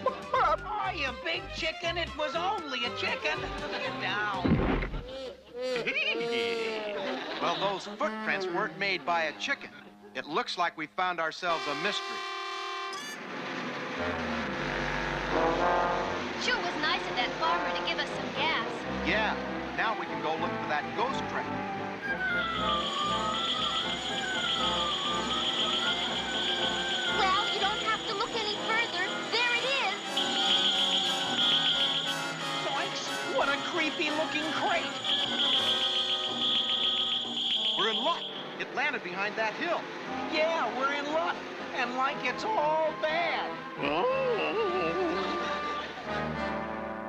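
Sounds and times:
brassy music: 0:00.0 - 0:04.3, 0:07.3 - 0:10.1, 0:11.4 - 0:47.0
steady road rush: 0:13.0 - 0:43.8
cartoon van engine rumble: 0:13.7 - 0:19.0
musical sting: 0:22.0 - 0:29.3
sustained eerie tones: 0:22.0 - 0:38.6
rapid pulsing electronic beep: 0:22.6 - 0:32.7, 0:33.4 - 0:38.6.

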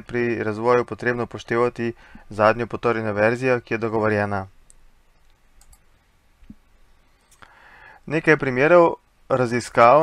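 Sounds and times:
computer mouse clicking: 0:04.6 - 0:06.6.

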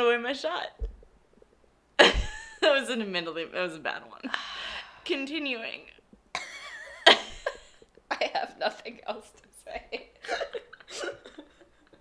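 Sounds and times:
woman laughing softly: 0:09.8 - 0:12.0.

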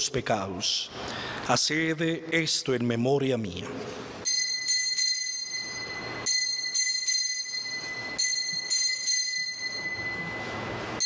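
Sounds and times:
altar bells ringing: 0:04.2 - 0:11.0.

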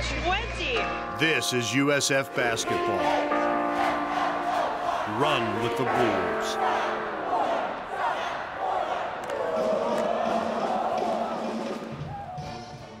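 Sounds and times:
background music: 0:00.0 - 0:13.0
crowd cheering and shouting: 0:02.4 - 0:13.0.

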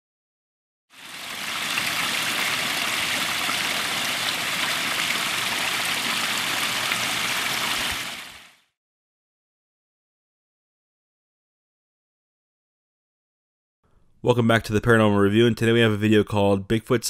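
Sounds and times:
running water splashing: 0:00.9 - 0:08.6.

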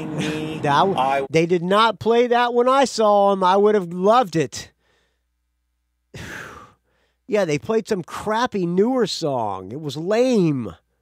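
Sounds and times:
man breathing: 0:04.7 - 0:05.4, 0:06.2 - 0:07.3.

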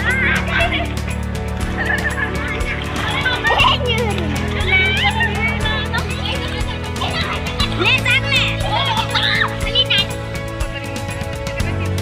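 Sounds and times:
children calling and squealing: 0:00.0 - 0:01.0, 0:01.8 - 0:12.0
background music with steady beat: 0:00.0 - 0:12.0.

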